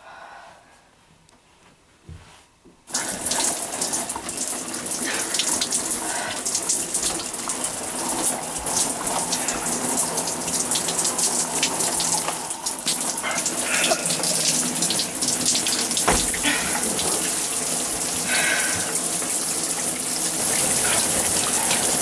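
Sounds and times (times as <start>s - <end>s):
shower spray spattering: 15.6s - 17.2s
knock: 16.0s - 16.4s.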